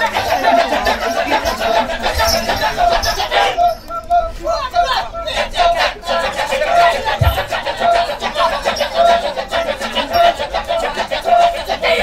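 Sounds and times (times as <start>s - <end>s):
men chanting in chorus: 0.0s - 12.0s.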